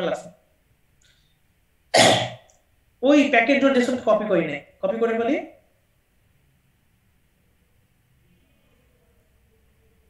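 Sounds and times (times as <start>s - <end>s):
short cough: 2.0s - 2.4s.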